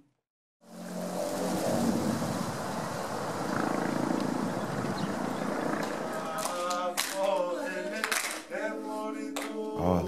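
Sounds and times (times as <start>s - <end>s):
wind rumbling on microphone: 0.8s - 6.4s.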